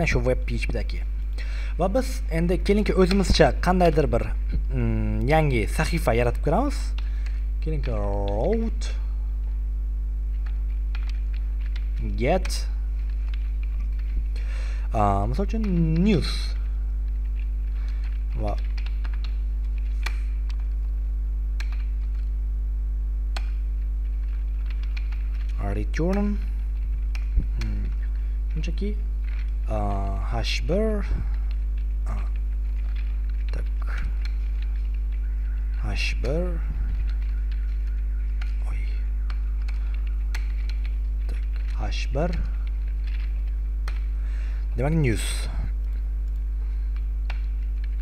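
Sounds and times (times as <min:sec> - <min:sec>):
low mains hum: 0:00.0 - 0:48.0
computer keyboard typing: 0:10.3 - 0:14.6, 0:15.3 - 0:20.8, 0:21.6 - 0:22.3, 0:23.3 - 0:44.5.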